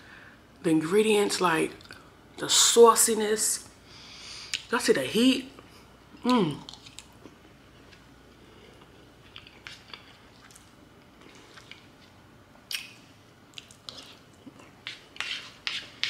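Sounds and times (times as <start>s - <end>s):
quiet chewing: 6.6s - 15.0s
plastic spoon scraping plate: 14.8s - 16.0s.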